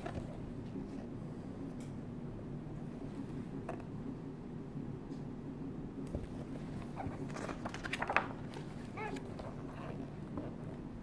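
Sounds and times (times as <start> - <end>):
book pages turning: 6.2 - 10.6.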